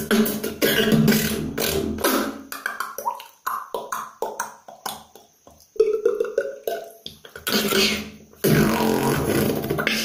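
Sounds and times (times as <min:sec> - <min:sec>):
beatboxing percussion hits: 0:00.0 - 0:10.0.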